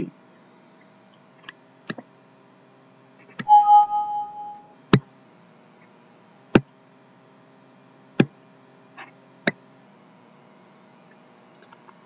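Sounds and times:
alert chime: 3.5 - 4.6.

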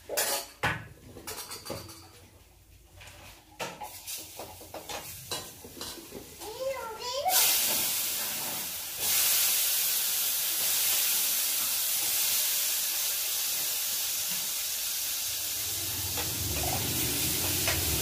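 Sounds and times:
frying sizzle in hot pan: 3.6 - 18.0.

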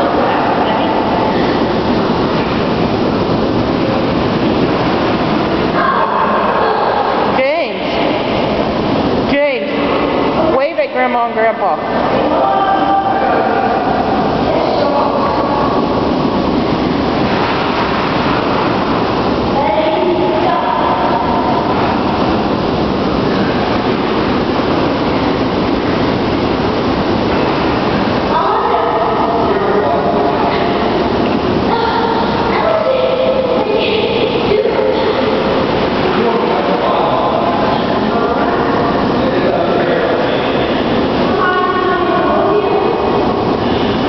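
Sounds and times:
hot tub jets bubbling water: 0.0 - 44.0.

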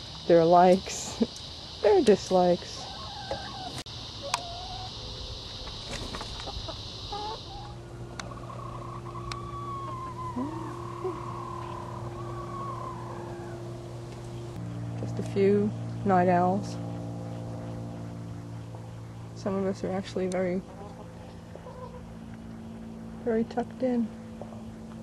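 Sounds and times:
high insect buzz: 0.0 - 14.6
hens calling softly: 2.6 - 5.0, 6.3 - 14.5
hen long wavering call: 2.8 - 5.2, 6.4 - 14.6.

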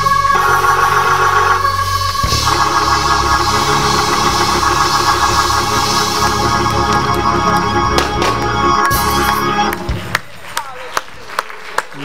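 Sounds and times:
low bass note: 0.0 - 10.1
organ playing held chords: 0.0 - 10.2.

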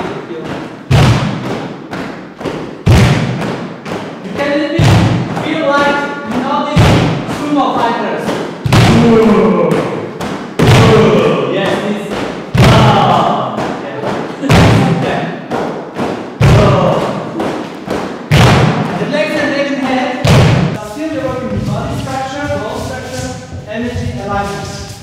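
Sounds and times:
deep thump: 0.9 - 1.7, 2.8 - 3.6, 4.8 - 5.4, 6.8 - 7.4, 8.6 - 9.2, 10.2 - 11.2, 18.3 - 18.9, 20.2 - 22.1.

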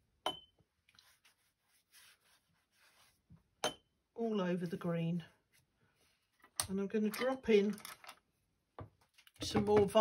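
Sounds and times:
soft brushing on paper: 0.9 - 3.4, 4.5 - 6.4.

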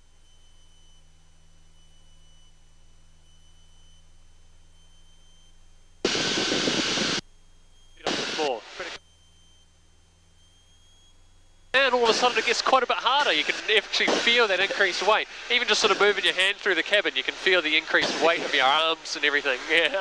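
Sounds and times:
aircraft engine drone: 6.0 - 20.0
engine and wind noise: 12.1 - 20.0.

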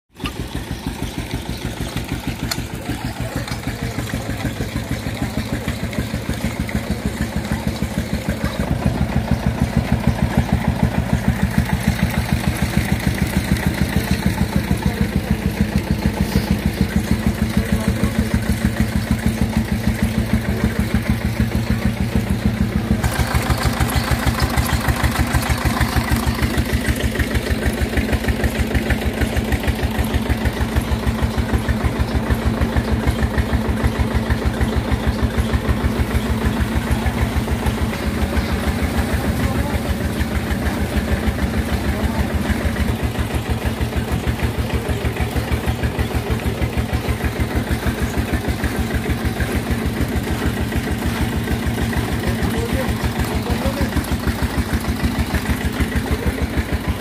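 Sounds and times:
stationary engine thumping: 0.2 - 57.0.

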